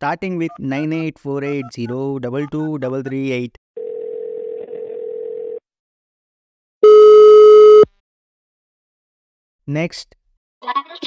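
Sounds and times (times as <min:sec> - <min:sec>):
harsh beep: 0:06.8 - 0:07.9
steady phone tone: 0:06.8 - 0:07.9.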